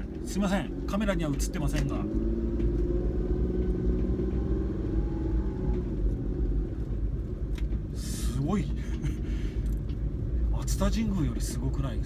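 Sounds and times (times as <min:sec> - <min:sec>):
road rumble: 0:00.0 - 0:12.0
van engine hum: 0:00.0 - 0:12.0.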